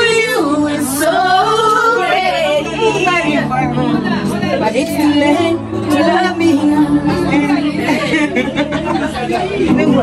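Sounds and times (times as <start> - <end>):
woman singing: 0.0 - 8.5
music: 0.0 - 10.0.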